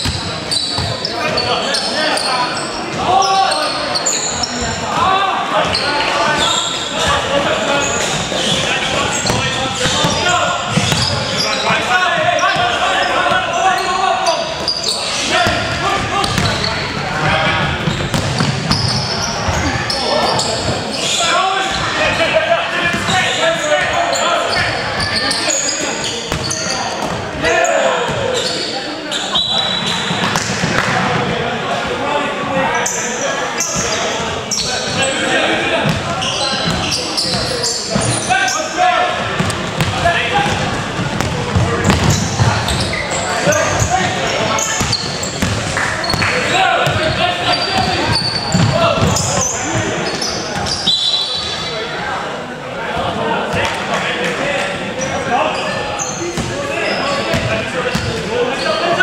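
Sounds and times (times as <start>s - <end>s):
players calling out: 0.0s - 59.0s
basketball bouncing on wooden court: 9.1s - 11.3s, 15.4s - 16.8s, 17.5s - 19.7s, 39.3s - 43.0s, 44.8s - 49.5s.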